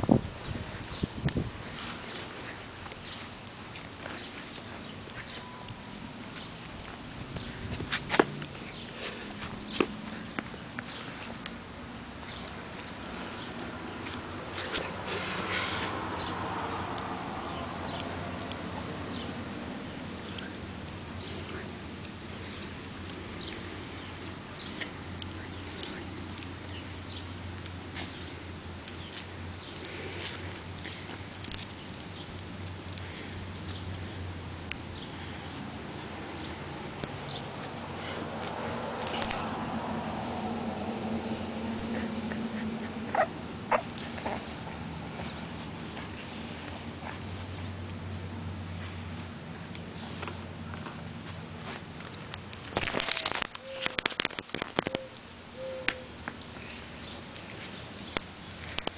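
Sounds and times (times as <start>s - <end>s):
rustling in grass: 0.0s - 16.0s
steady background hiss: 0.0s - 58.9s
puppy making small vocal noises: 41.6s - 45.4s.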